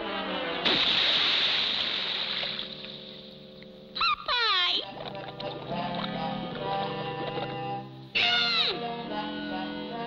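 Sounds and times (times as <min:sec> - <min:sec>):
loud splash into water: 0:00.6 - 0:03.0
cartoon orchestral music: 0:04.5 - 0:10.0.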